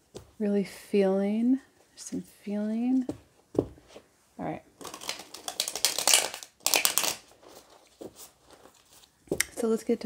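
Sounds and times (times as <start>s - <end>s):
cards being shuffled: 4.8s - 9.6s.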